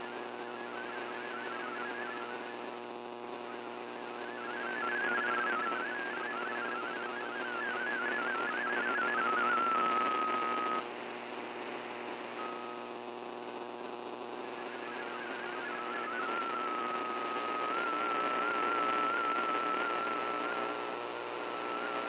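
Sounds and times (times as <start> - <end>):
radio static hiss: 0.0 - 22.0
warbling data tones: 0.4 - 2.8, 3.4 - 10.8, 14.4 - 20.7.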